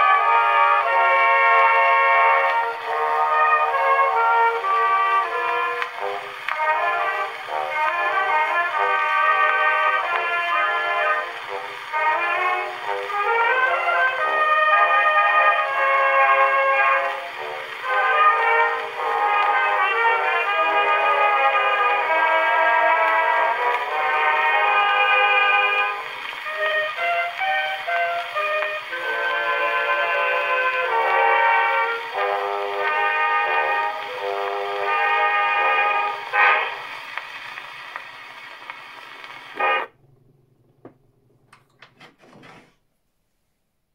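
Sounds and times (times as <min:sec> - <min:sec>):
orchestral waltz on gramophone: 0:00.0 - 0:40.2.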